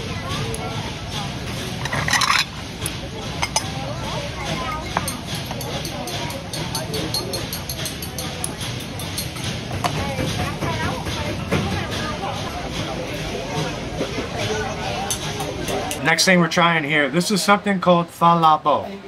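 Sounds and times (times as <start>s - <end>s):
chatter of voices: 0.0s - 19.0s
bowls and utensils clinking: 1.5s - 16.0s.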